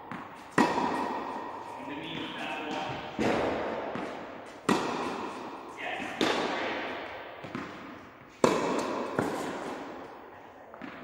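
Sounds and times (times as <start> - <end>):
echo in large indoor hall: 0.0 - 11.0
racket hitting tennis ball: 0.0 - 11.0.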